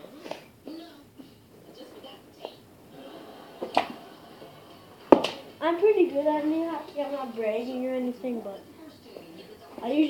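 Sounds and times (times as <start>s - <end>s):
hockey stick knocking ball: 5.1s - 5.5s.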